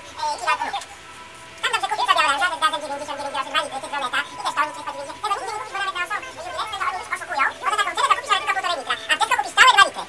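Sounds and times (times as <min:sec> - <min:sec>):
high-pitched voice: 0:00.0 - 0:01.0, 0:01.6 - 0:10.0.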